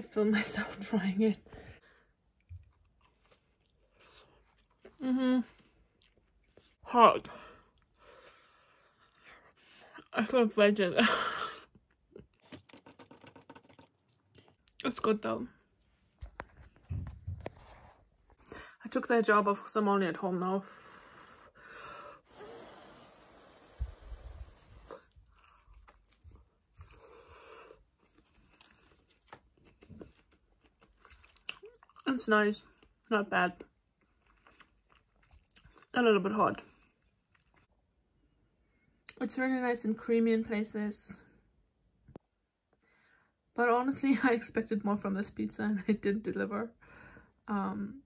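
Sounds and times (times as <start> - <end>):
chewing crunchy crust: 2.4 - 6.8, 25.1 - 35.9, 36.6 - 37.7.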